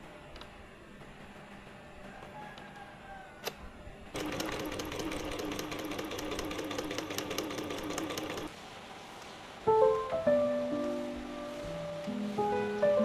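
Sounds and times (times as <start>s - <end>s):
sewing machine stitching: 4.1s - 8.5s.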